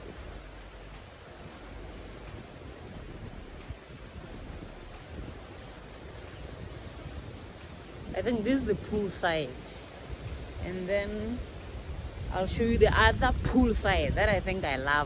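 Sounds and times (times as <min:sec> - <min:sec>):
wind buffeting a microphone: 0:00.0 - 0:15.0.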